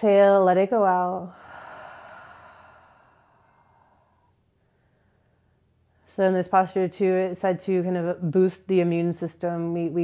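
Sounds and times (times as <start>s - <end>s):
person sighing: 1.3s - 3.4s.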